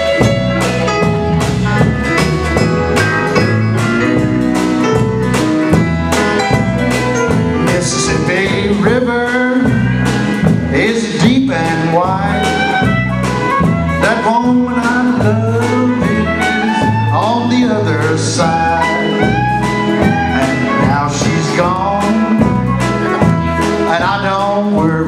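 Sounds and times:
fiddle melody: 0.0s - 24.2s
bass: 0.0s - 25.0s
drum kit: 0.0s - 25.0s
electric guitar: 0.0s - 25.0s.

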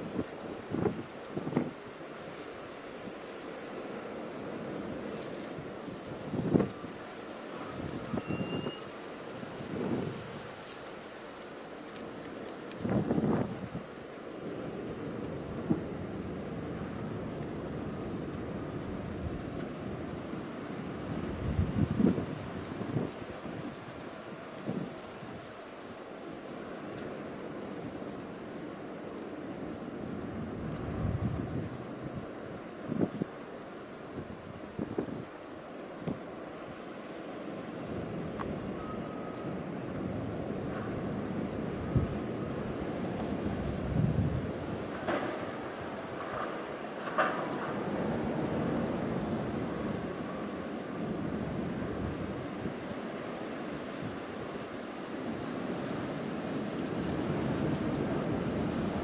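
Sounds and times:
wind buffeting microphone: 0.0s - 1.8s, 5.2s - 8.7s, 12.7s - 13.9s, 15.0s - 25.0s, 30.2s - 33.3s, 37.9s - 53.0s
blizzard wind: 0.0s - 59.0s
faint clicks: 5.2s - 15.8s, 38.3s - 41.2s.

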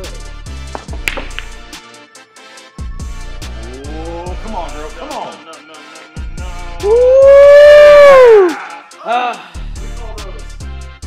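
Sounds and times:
hip-hop music: 0.0s - 11.0s
loud wail: 6.8s - 8.6s.

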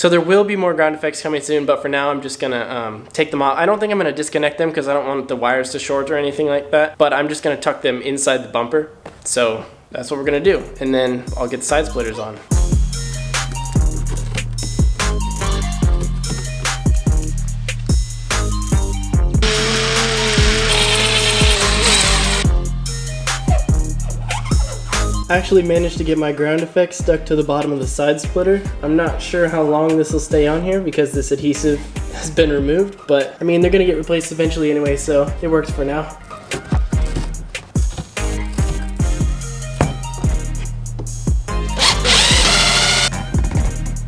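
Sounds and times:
music with drum beat: 12.5s - 19.8s, 21.4s - 26.3s, 32.0s - 32.9s, 36.7s - 44.0s
power drill running: 19.4s - 22.5s, 41.8s - 43.1s.

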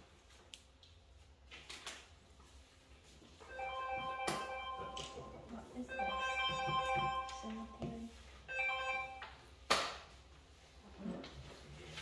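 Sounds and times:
phone ringtone melody: 3.5s - 9.3s.

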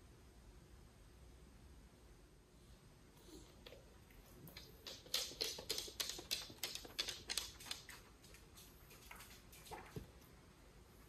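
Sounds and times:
dog claws clicking on hard floor: 3.6s - 10.1s.

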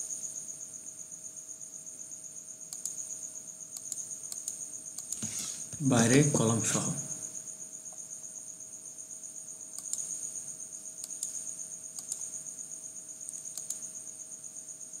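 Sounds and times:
crickets chirping: 0.0s - 15.0s
computer mouse clicks: 2.7s - 3.0s, 3.8s - 5.7s, 9.8s - 10.1s, 11.0s - 11.4s, 12.0s - 12.4s, 13.3s - 13.9s.

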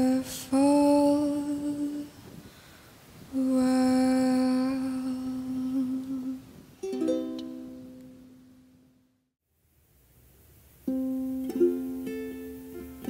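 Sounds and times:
woman humming: 3.3s - 6.6s
plucked ukulele notes: 6.2s - 8.5s, 10.8s - 13.0s.

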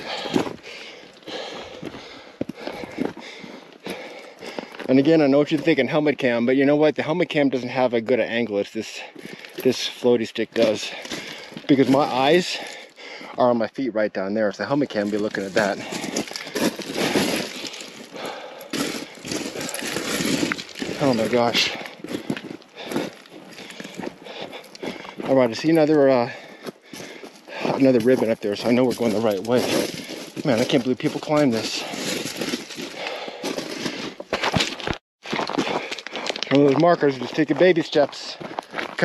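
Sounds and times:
boots crunching on loose rock: 0.0s - 6.4s, 9.0s - 13.4s, 14.6s - 39.0s.

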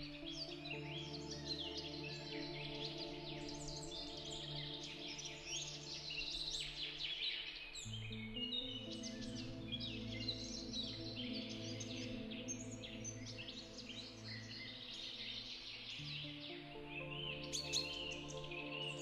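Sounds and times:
birds chirping and singing: 0.0s - 19.0s
soft music of sustained chords: 0.0s - 19.0s.

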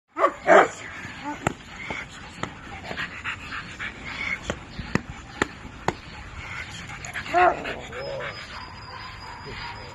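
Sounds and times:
dog barking: 0.2s - 1.4s, 8.5s - 9.9s.

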